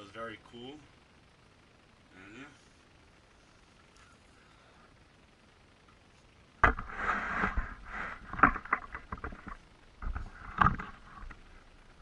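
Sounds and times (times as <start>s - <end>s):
knock with scrape: 6.6s - 10.9s.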